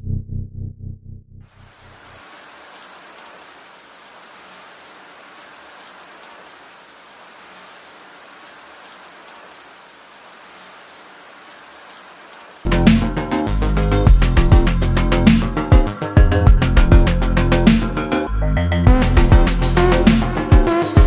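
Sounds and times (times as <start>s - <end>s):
steady hiss with crackle: 1.5s - 13.3s.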